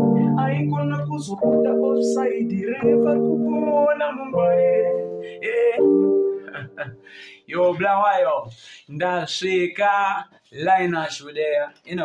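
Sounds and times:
electronic keyboard chords: 0.0s - 7.2s
man's voice: 0.0s - 12.0s.

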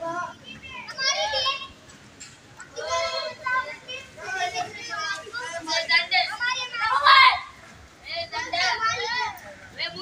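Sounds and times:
children calling out: 0.0s - 2.0s, 2.6s - 10.0s.

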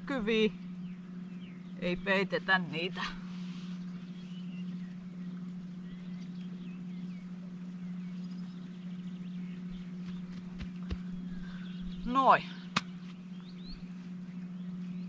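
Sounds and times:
steady low hum: 0.0s - 15.0s
faint bird chirps: 3.2s - 10.4s, 11.0s - 15.0s.

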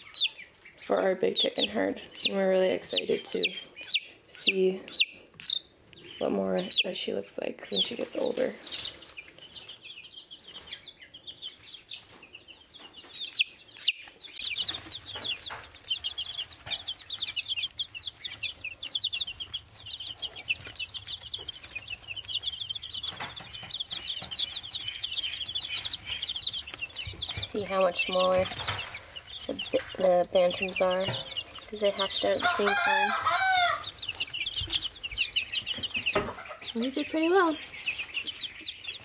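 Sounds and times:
chicks peeping: 0.0s - 39.0s.

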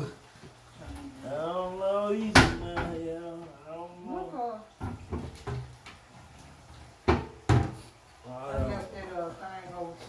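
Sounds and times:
wooden cabinet door knocking shut: 2.3s - 3.0s, 7.0s - 7.8s.

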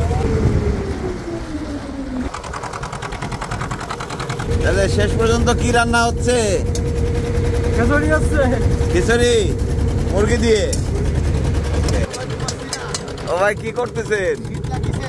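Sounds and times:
boat engine rumbling: 0.0s - 15.0s
voices: 4.5s - 15.0s.

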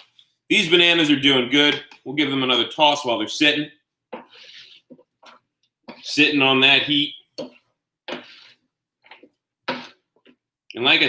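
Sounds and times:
spatula scraping on griddle: 4.2s - 5.0s, 5.9s - 8.6s.

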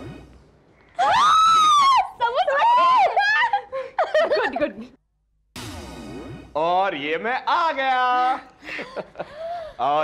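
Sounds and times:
woman squealing with delight: 1.0s - 3.5s.

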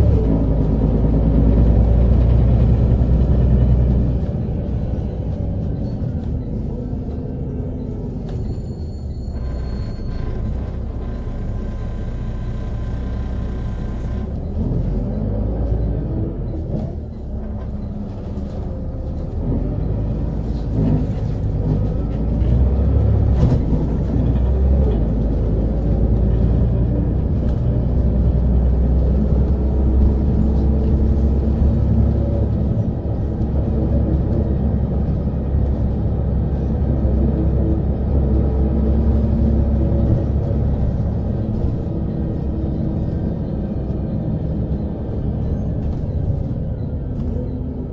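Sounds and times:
bus diesel engine rumbling: 0.0s - 47.9s.

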